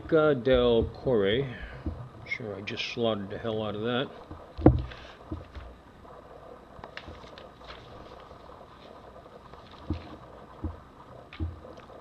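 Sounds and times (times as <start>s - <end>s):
paper rustling: 7.0s - 8.3s.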